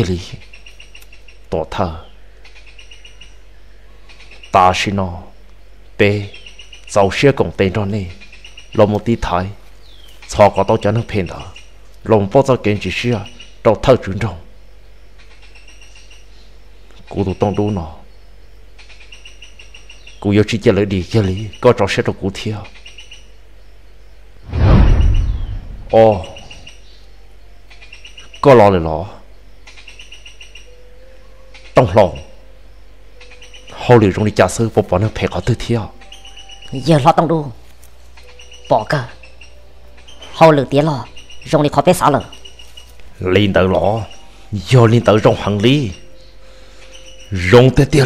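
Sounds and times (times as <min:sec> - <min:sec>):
small bird chirping: 0:00.0 - 0:48.0
steady low hum: 0:20.9 - 0:28.2.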